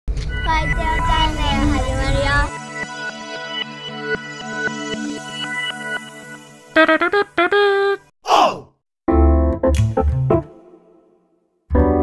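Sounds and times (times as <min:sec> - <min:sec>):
loud low rumble: 0:00.1 - 0:02.5
person speaking: 0:07.8 - 0:08.7.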